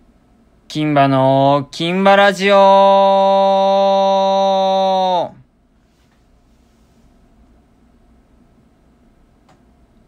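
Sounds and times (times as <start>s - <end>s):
man holding long vowel: 0.7s - 5.5s.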